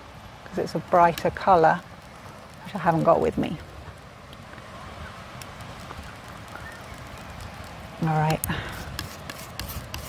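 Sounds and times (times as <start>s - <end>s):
palette knife scraping paint: 8.6s - 10.0s.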